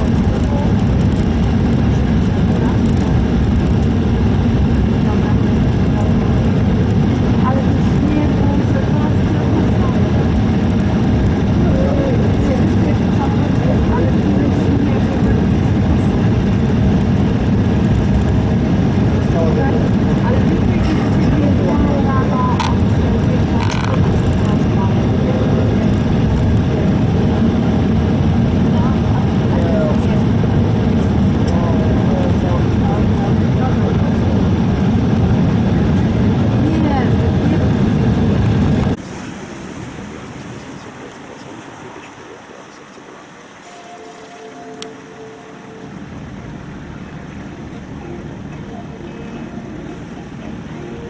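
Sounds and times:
faint voices: 0:00.0 - 0:17.3, 0:17.9 - 0:51.0
aircraft cabin rumble: 0:00.0 - 0:51.0.

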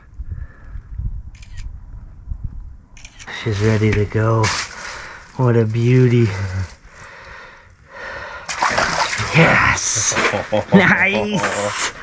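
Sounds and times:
fish splashing in water: 0:08.4 - 0:09.4.

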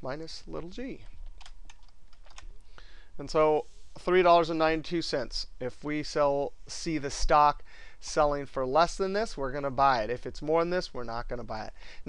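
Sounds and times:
computer keyboard typing: 0:01.0 - 0:02.5.

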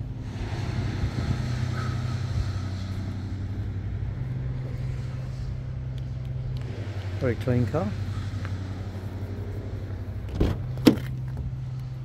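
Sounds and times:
street noise: 0:00.0 - 0:12.0
vehicle engine idling: 0:00.0 - 0:12.0
wind rustle on microphone: 0:00.0 - 0:12.0.

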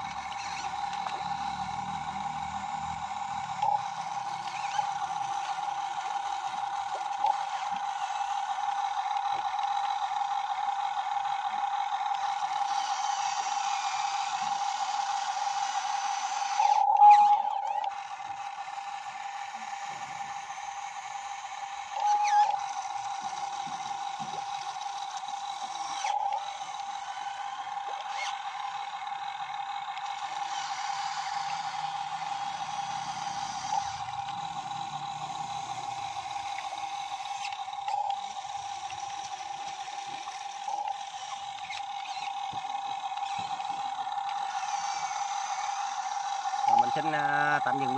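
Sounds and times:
hydraulic pump whine: 0:00.0 - 0:47.9.

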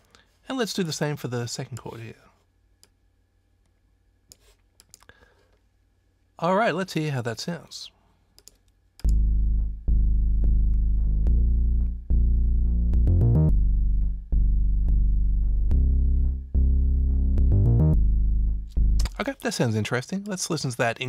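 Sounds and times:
synthesized bass line: 0:09.0 - 0:19.2.

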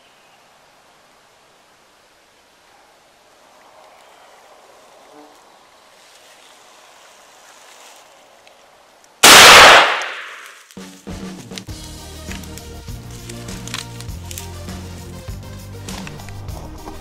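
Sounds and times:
shotgun shot: 0:09.2 - 0:10.6.

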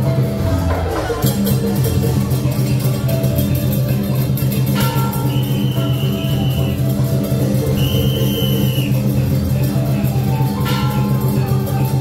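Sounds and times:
loud music with drums: 0:00.0 - 0:12.0
high steady tone: 0:04.8 - 0:09.2.

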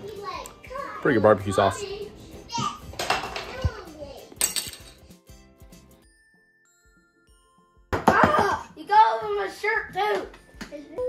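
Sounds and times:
children speaking: 0:00.0 - 0:04.4, 0:08.1 - 0:11.0
light background music: 0:00.0 - 0:11.0.

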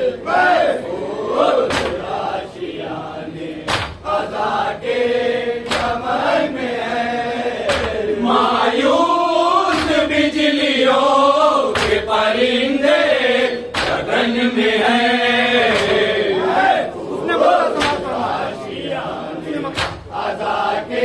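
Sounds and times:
men chanting: 0:00.0 - 0:21.0
sharp beat: 0:17.7 - 0:18.4.

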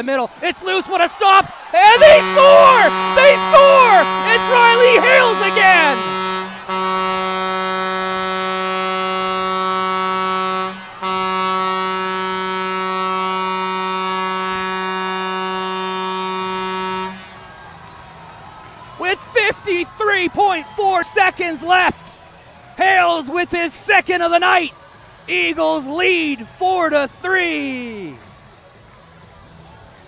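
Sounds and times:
arena goal horn: 0:01.7 - 0:17.4.

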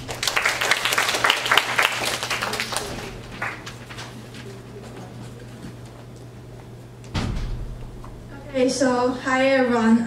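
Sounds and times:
low hum: 0:06.3 - 0:10.0
dull thump: 0:07.1 - 0:08.3.

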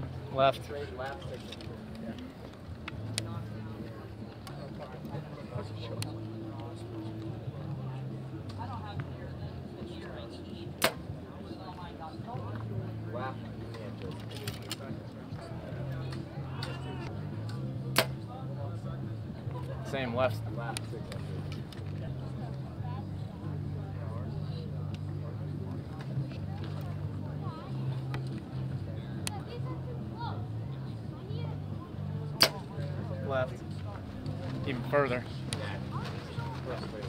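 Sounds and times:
bowstring crack: 0:10.8 - 0:11.0, 0:17.5 - 0:18.2, 0:32.4 - 0:32.7.

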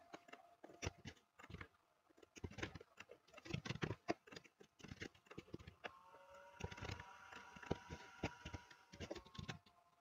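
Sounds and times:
keyboard and mouse clicks: 0:00.0 - 0:06.0, 0:06.6 - 0:09.7.

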